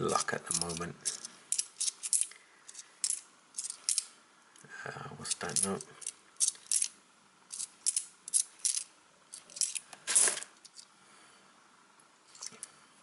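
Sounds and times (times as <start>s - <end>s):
coins clinking: 0.1s - 4.1s, 5.3s - 6.9s, 7.5s - 10.8s.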